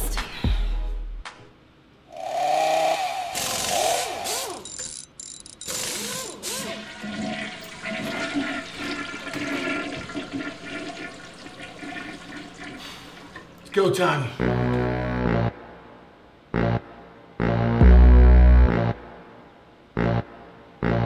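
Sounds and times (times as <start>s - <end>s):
toilet flushing: 6.3s - 13.8s.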